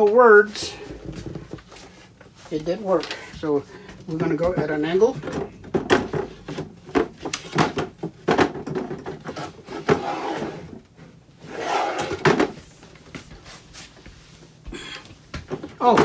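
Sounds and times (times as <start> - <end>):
drawer knocks and clicks: 5.2 - 9.2
drawer sliding scrape: 9.1 - 10.8, 11.4 - 12.7.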